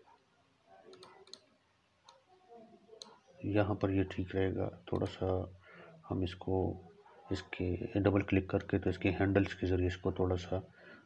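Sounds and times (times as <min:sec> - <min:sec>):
computer mouse clicks: 0:00.9 - 0:01.5.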